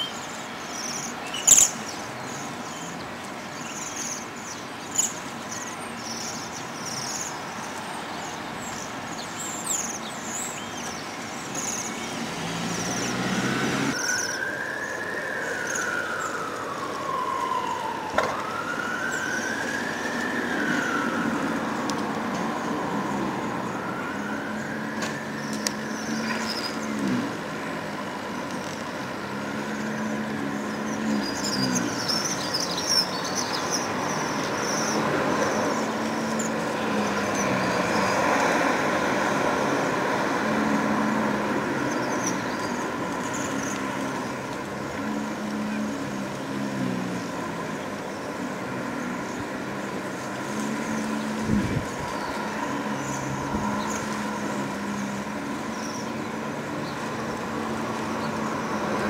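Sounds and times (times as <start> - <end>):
emergency vehicle siren wailing: 10.8 - 59.0.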